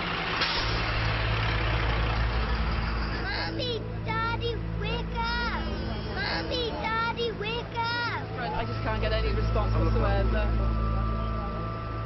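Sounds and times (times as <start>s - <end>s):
idling engine hum: 0.0s - 12.0s
person crying and wailing: 3.2s - 3.8s, 6.2s - 7.0s.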